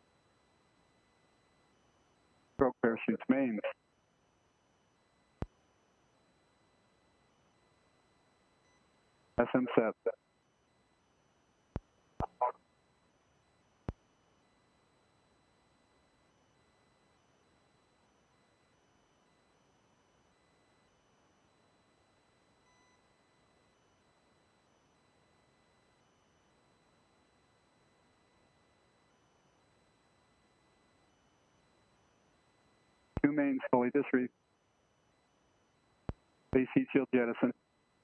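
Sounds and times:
faint high-pitched tones: 0.0s - 38.0s.

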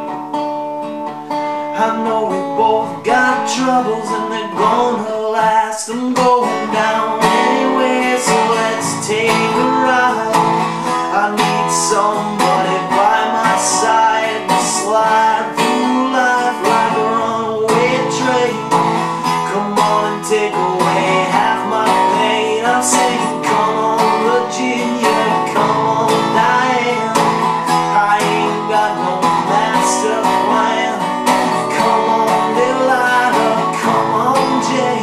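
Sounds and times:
resonator guitar strumming chords: 0.0s - 35.0s.

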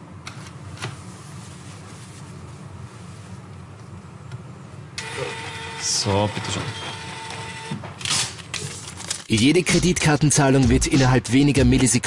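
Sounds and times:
receipt printer whirring: 5.0s - 8.0s.

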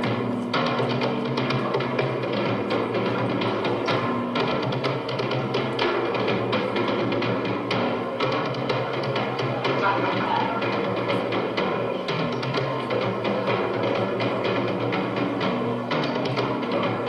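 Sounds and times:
rapid drumming: 0.0s - 17.0s.

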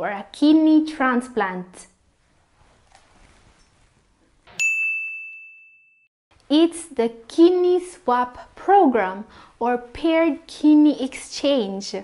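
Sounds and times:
bright bell-like ding: 4.5s - 6.1s.

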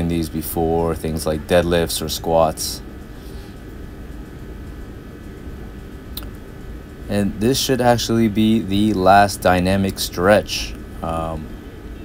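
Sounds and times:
faint high steady tones: 0.0s - 12.0s
low background hum: 0.0s - 12.0s.

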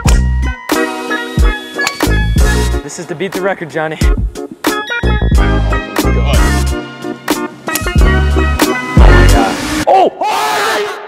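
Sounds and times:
voices shouting together: 9.8s - 11.0s.

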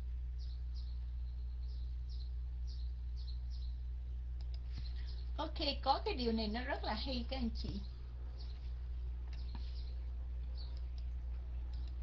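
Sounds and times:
steady low hum: 0.0s - 12.0s
person speaking: 5.0s - 8.0s.

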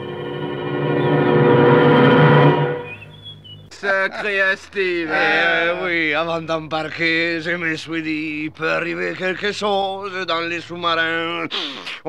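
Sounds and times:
brass-led orchestral music: 0.0s - 3.2s.

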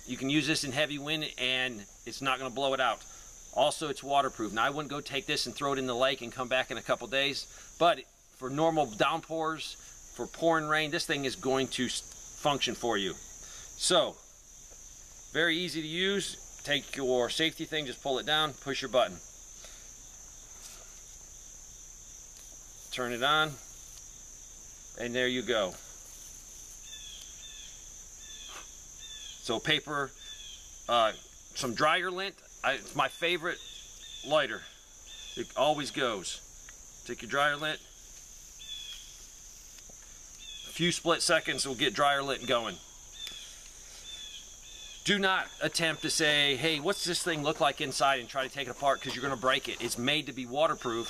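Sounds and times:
insects chorus: 0.0s - 51.0s
faint ticks: 27.1s - 27.4s, 39.7s - 40.5s, 43.2s - 43.8s.

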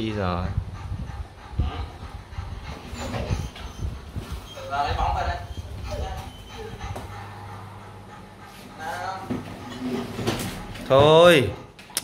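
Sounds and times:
dog panting: 0.0s - 11.8s.

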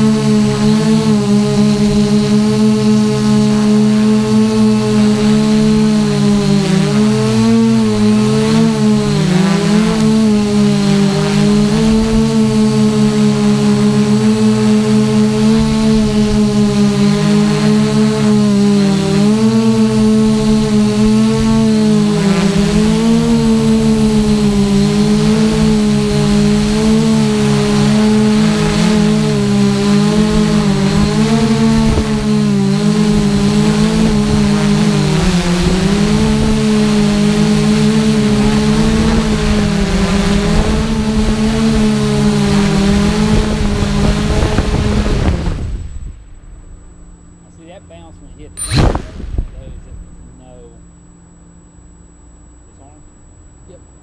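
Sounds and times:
drone propellers droning: 0.0s - 54.0s
thin high whine: 0.0s - 54.0s.

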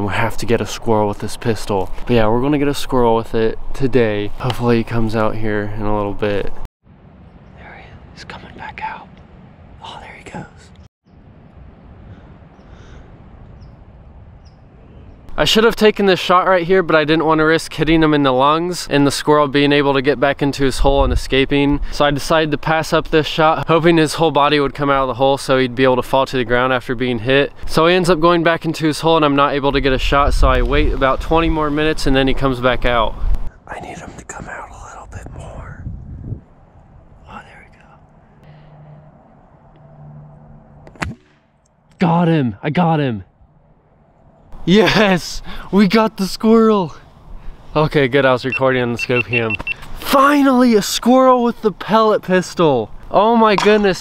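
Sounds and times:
wind rumble on microphone: 0.0s - 15.3s, 20.5s - 21.9s, 29.6s - 38.1s
air pistol pop: 40.9s - 41.5s.

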